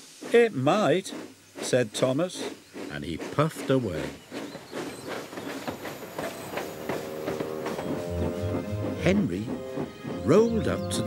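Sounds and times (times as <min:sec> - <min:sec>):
steam hissing: 0:00.0 - 0:11.0
steam locomotive chuffing: 0:00.0 - 0:11.0
soft music: 0:07.0 - 0:11.0.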